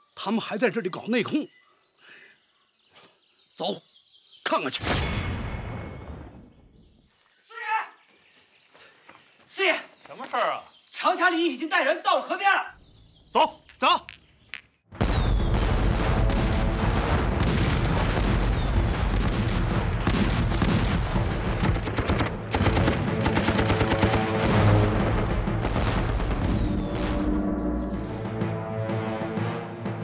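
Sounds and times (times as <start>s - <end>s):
rifle and machine-gun fire: 15.6s - 27.3s
dramatic film music: 15.7s - 30.0s.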